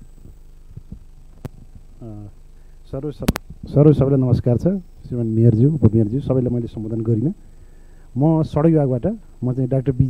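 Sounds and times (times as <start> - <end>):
low electrical hum: 0.0 - 10.0
sharp click: 3.2 - 3.5.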